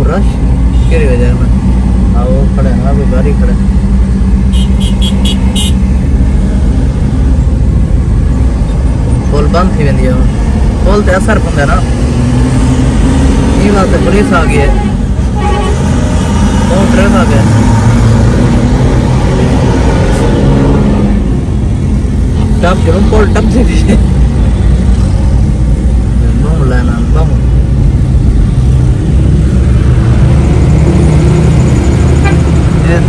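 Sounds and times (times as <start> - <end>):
vehicle engines rumbling: 0.0 - 33.0.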